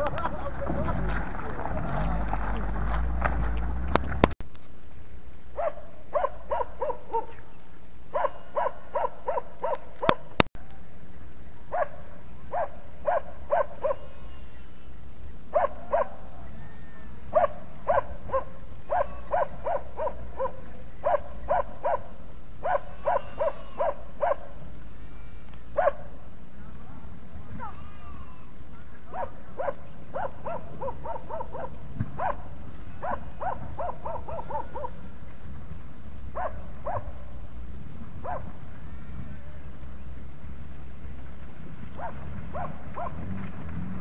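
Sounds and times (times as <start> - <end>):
dog barking: 5.6 - 7.4, 8.1 - 10.3, 11.7 - 14.1, 15.5 - 16.3, 17.3 - 24.6, 25.8 - 26.2, 29.1 - 35.0, 36.4 - 37.2, 38.2 - 38.6, 42.0 - 43.2.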